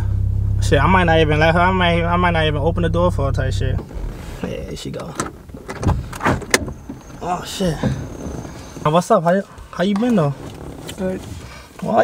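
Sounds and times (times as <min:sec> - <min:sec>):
car interior hum: 0:00.0 - 0:12.0
car door opening: 0:03.7 - 0:11.8.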